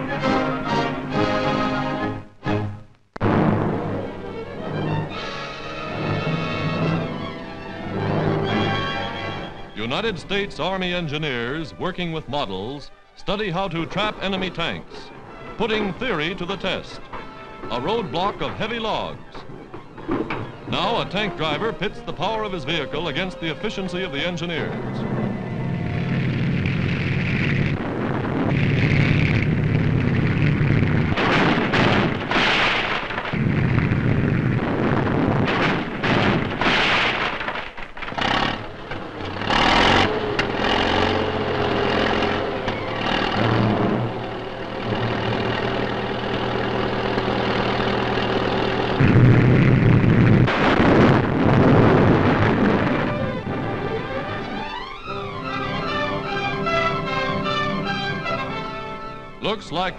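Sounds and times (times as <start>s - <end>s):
music: 0.0s - 28.4s, 42.3s - 48.2s, 52.2s - 59.9s
tank engine running: 4.0s - 10.4s, 13.8s - 59.4s
logs cracking and thudding: 26.0s - 44.0s, 45.4s - 54.6s.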